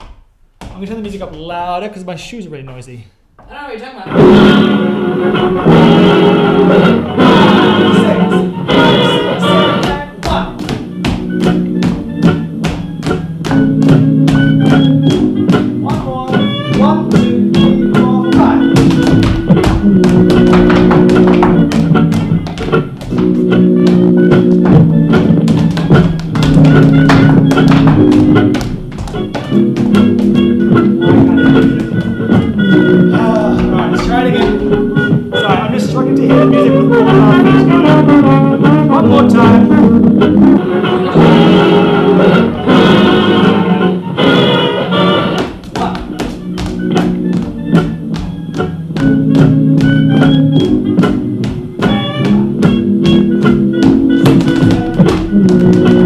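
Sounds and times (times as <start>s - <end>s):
tap shoes on wooden floor: 0.0s - 1.5s, 9.8s - 32.7s, 33.4s - 35.3s, 45.4s - 56.0s
jazz band music through speaker: 4.1s - 56.0s.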